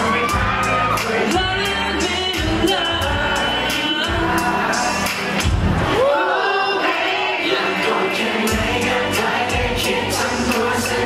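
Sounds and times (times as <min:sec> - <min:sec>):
male pop vocals: 0:00.0 - 0:05.4, 0:06.3 - 0:11.0
pop backing track with beat: 0:00.0 - 0:06.7, 0:07.4 - 0:11.0.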